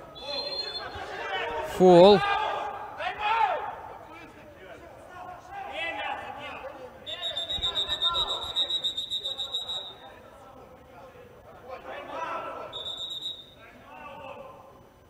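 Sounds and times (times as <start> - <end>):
players shouting in hall: 0.0 - 4.4
referee's whistle blast: 0.1 - 1.0, 7.0 - 10.0, 12.7 - 13.6.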